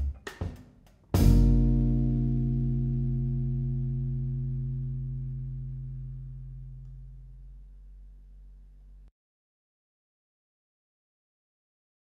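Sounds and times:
jazz guitar and bass chord ringing: 0:01.2 - 0:08.0.

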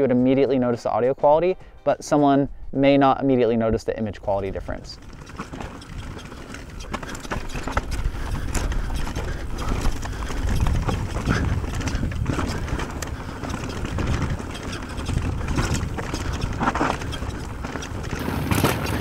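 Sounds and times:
wind and tyre rumble: 0:03.8 - 0:19.0
bike knocking over rocks: 0:05.0 - 0:19.0.

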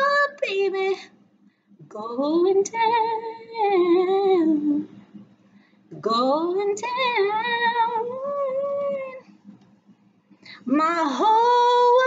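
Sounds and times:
woman singing a cappella: 0:00.0 - 0:01.2, 0:01.8 - 0:05.2, 0:05.9 - 0:09.4, 0:10.5 - 0:12.0.

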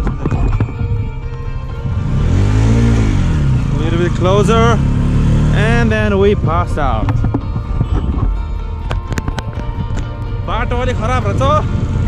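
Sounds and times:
motorcycle engine revving: 0:00.0 - 0:08.8, 0:10.4 - 0:12.0
person's voice: 0:05.5 - 0:07.1.

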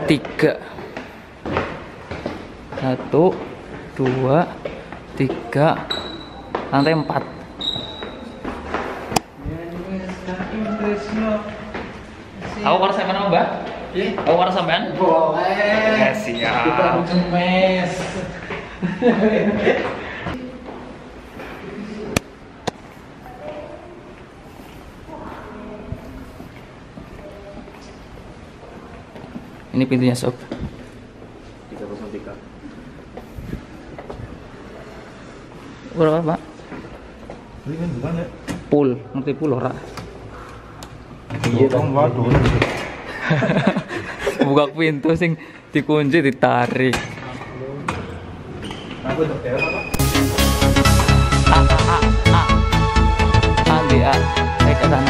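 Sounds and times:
indistinct voices in a sports hall: 0:00.0 - 0:50.0
brief high squeak: 0:05.9 - 0:08.4, 0:49.6 - 0:50.0.

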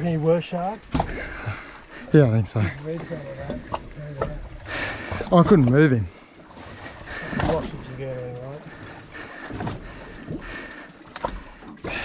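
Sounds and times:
water around a drifting boat: 0:00.0 - 0:12.0
wind: 0:00.0 - 0:12.0.

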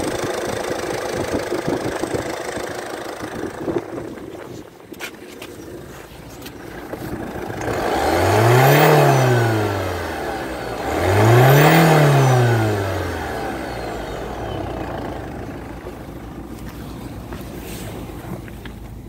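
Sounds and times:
car engine revving: 0:06.6 - 0:18.6.

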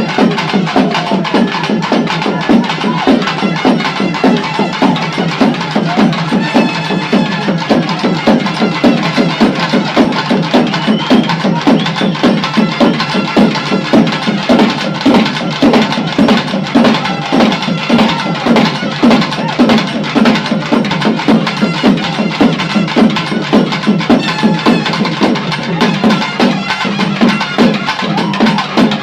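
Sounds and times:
music with fast drum beat: 0:00.0 - 0:29.0.

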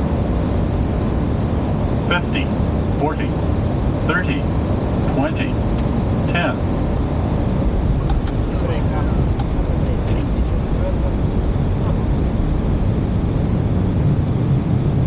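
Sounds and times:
low rumble of airflow and wheels: 0:00.0 - 0:15.0.

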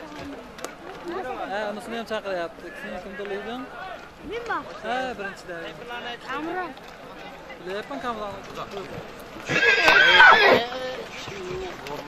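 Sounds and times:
horse whinnying: 0:09.4 - 0:10.7.

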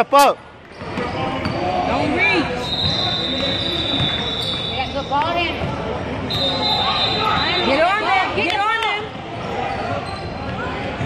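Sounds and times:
sneakers squeaking on court: 0:02.5 - 0:07.8, 0:10.0 - 0:10.6.

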